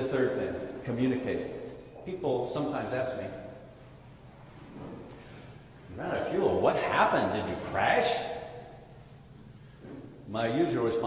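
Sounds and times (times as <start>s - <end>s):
man speaking in echoing hall: 0.0s - 4.0s, 5.1s - 11.0s.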